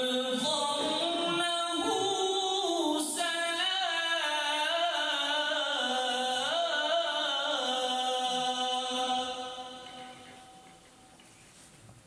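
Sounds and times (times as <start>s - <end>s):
man reciting melodically: 0.0s - 10.8s.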